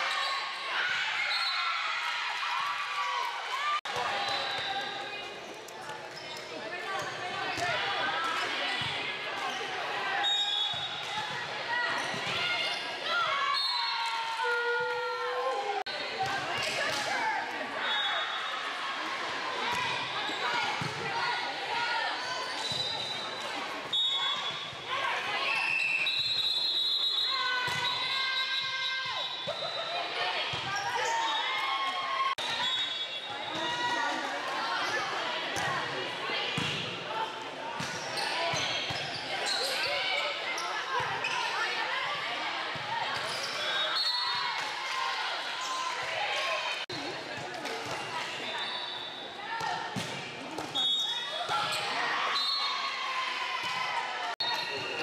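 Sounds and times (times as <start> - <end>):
people calling out and chattering: 0.0 - 55.0.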